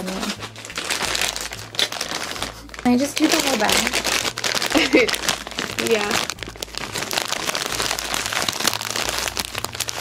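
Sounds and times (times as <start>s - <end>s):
plastic chip bag crinkling: 0.0s - 10.0s.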